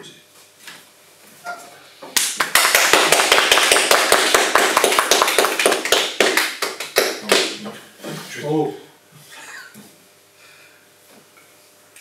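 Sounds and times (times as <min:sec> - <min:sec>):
audience applauding: 0:02.4 - 0:07.6.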